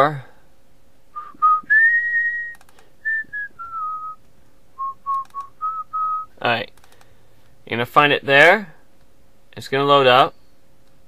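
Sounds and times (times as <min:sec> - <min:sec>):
person whistling a tune: 0:01.2 - 0:04.2, 0:04.8 - 0:06.3
computer mouse clicks: 0:02.5 - 0:02.9, 0:05.1 - 0:05.5, 0:06.7 - 0:07.1.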